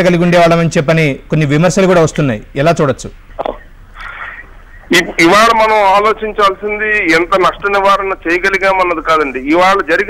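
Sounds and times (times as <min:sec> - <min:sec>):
person speaking: 0:00.1 - 0:10.0
man speaking on phone line: 0:04.9 - 0:10.0.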